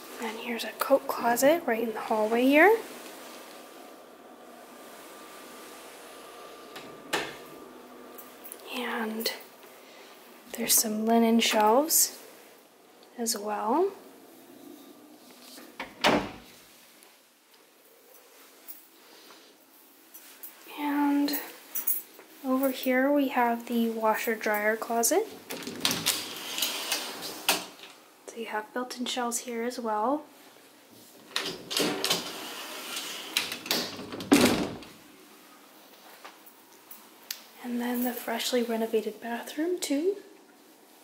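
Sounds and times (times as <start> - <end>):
closet doors thudding shut: 6.0 - 8.4, 15.8 - 16.5, 31.3 - 35.0
closet doors knocking and rattling: 15.8 - 16.4, 25.4 - 26.4, 31.2 - 32.5, 33.3 - 35.0.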